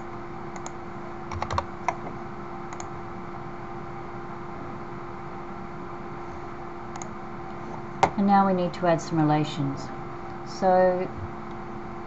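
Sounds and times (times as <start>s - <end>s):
constant low hum: 0.0s - 12.0s.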